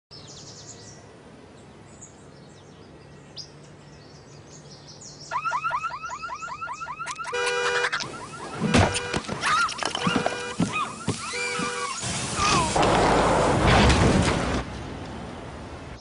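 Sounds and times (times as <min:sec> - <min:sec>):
birds chirping: 0:00.1 - 0:12.8
car alarm siren: 0:05.3 - 0:12.0.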